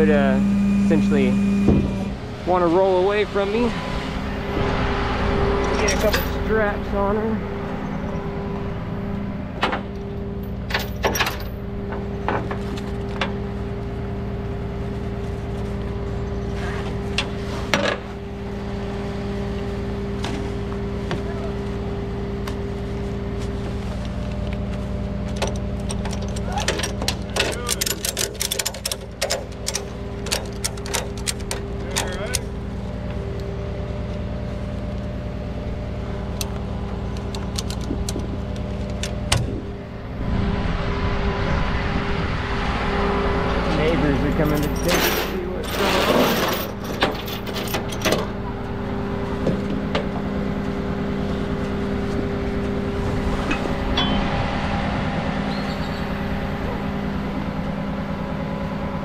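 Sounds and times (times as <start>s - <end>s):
truck engine idling: 0.0s - 59.0s.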